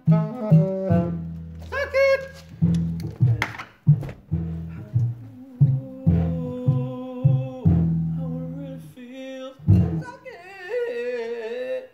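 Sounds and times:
washtub bass plucked: 0.0 - 9.0, 9.6 - 10.2.

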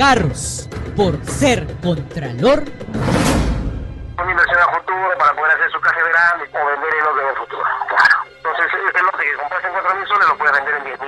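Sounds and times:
man speaking over telephone: 0.0 - 2.8, 4.2 - 11.0.

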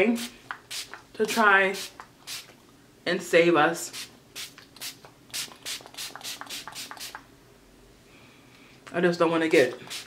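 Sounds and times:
spray bottle pumping: 0.5 - 2.6, 4.0 - 7.2, 9.6 - 10.0.

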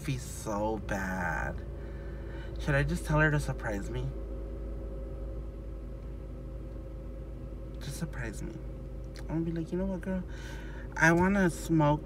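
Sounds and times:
car engine idling: 0.0 - 12.0
faint constant hum: 0.0 - 12.0.

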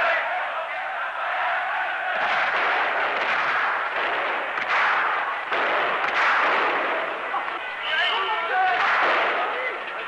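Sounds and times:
sharp cracks: 2.2 - 7.7, 8.6 - 10.0.

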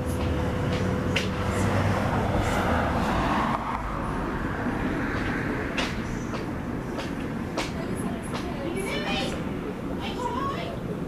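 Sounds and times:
car driving past: 0.0 - 6.3.

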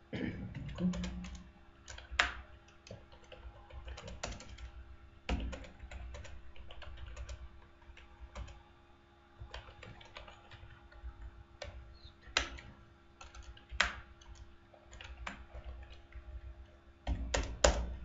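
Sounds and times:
faint low hum: 0.0 - 18.0
typing on computer keyboard: 0.5 - 8.6, 9.4 - 16.4, 17.0 - 18.0.

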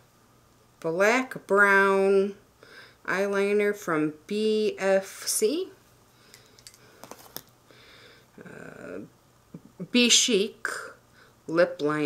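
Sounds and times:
light clicks of packaged pencil: 6.3 - 7.6.

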